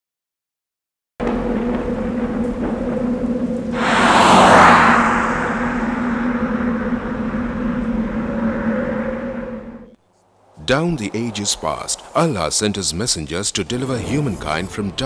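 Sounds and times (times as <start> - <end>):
loud whoosh: 3.7 - 8.2
low synthetic drone: 3.8 - 10.0.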